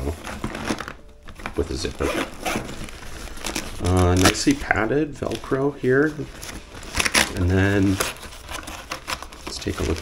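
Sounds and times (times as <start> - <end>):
fabric rustling: 0.0 - 10.0
zipper pulled open: 2.0 - 2.8.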